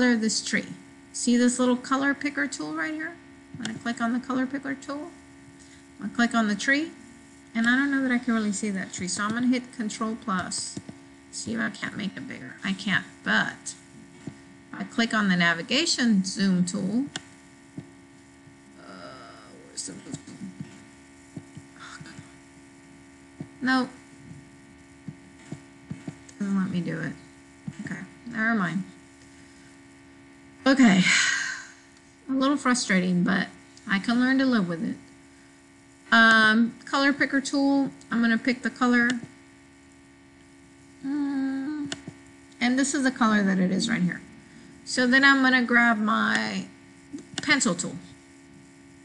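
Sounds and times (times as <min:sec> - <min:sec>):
person speaking: 0:00.0 - 0:05.2, 0:06.0 - 0:17.2, 0:18.7 - 0:22.4, 0:23.4 - 0:29.0, 0:41.0 - 0:48.2
low electrical hum: 0:00.0 - 0:49.0.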